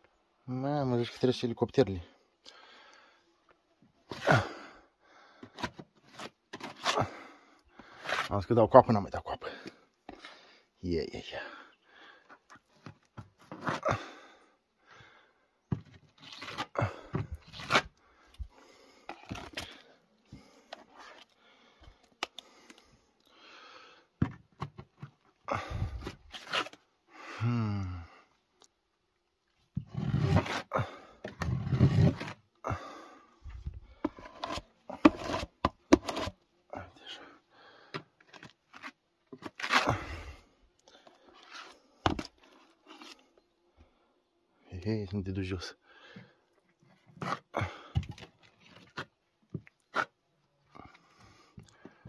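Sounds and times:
putty knife scraping plaster: 5.4s - 7.1s, 7.9s - 8.4s, 13.4s - 13.9s, 16.0s - 18.0s, 19.1s - 19.8s, 26.0s - 26.8s, 29.8s - 30.7s, 31.3s - 32.5s, 33.9s - 36.4s, 38.2s - 40.2s, 41.1s - 43.3s, 47.0s - 47.5s.

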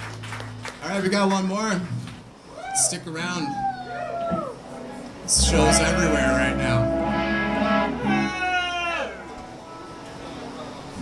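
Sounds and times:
electric guitar notes bending: 4.5s - 10.1s.

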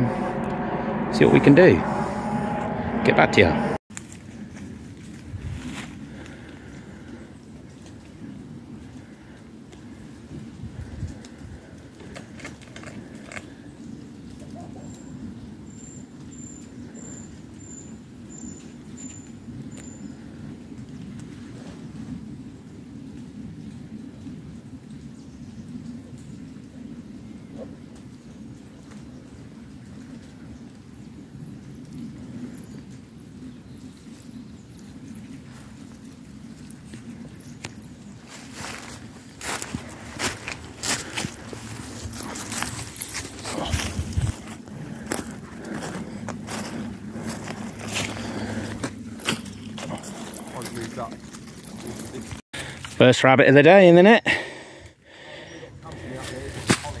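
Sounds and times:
steady low rumble: 0.0s - 7.0s, 34.9s - 52.4s
hurried footsteps through grass: 35.3s - 53.0s.

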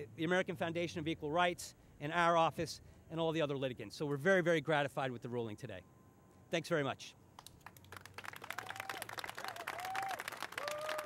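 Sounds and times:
people clapping: 7.4s - 11.0s.

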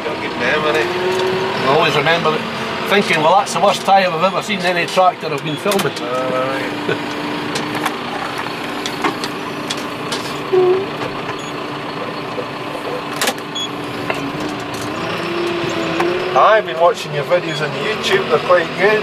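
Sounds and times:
tractor engine hum: 0.0s - 19.0s.

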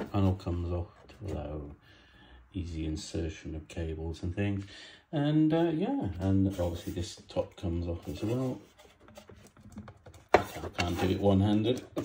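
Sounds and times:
plastic parts clicking and rubbing: 8.8s - 12.0s.

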